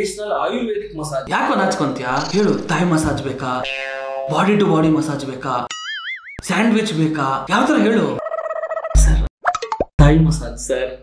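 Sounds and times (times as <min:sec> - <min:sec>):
man's voice: 0:00.0 - 0:03.7, 0:10.0 - 0:11.0
cartoon plop of falling blips: 0:05.7 - 0:06.4.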